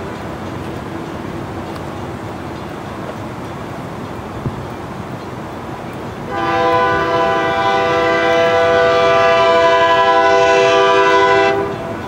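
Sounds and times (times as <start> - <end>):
train air horn blast: 6.3 - 12.0.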